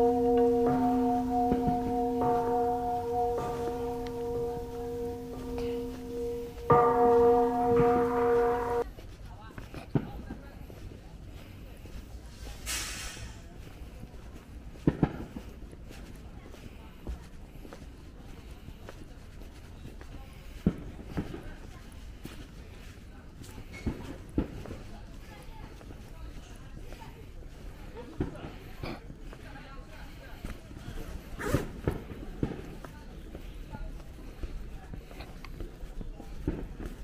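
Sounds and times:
bell-like ringing tone: 0.0s - 8.8s
short hiss: 12.6s - 13.4s.

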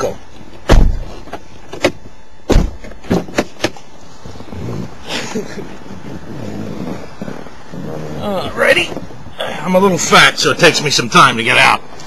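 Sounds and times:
car door opening: 0.4s - 3.8s
knocks and clunks inside car: 0.6s - 3.8s.

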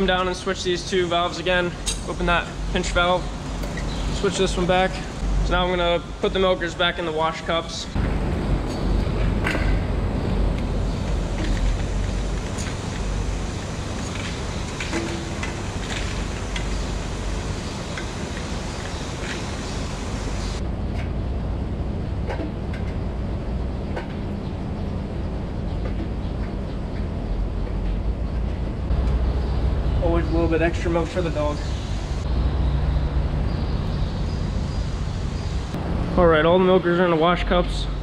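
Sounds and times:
low machinery hum: 0.0s - 38.0s
clicks and knocks of milker units: 8.0s - 20.2s.

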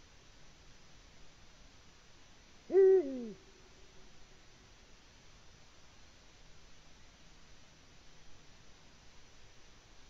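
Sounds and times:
owl deep hoot: 2.7s - 3.7s.

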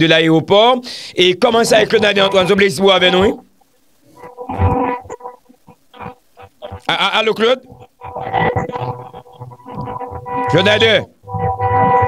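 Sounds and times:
garbled phone sound: 1.4s - 12.0s
broken crackles: 1.8s - 12.0s
faint phone line tone: 4.1s - 6.9s, 7.7s - 12.0s.

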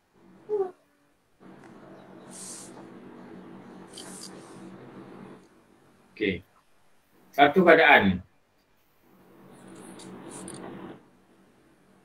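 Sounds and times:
steady low hum: 0.0s - 8.3s, 8.9s - 12.0s.

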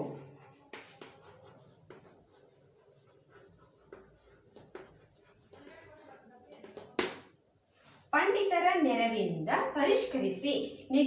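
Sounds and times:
chalk tapping on board: 0.0s - 7.3s
chalk scratching on chalkboard: 0.0s - 8.1s.

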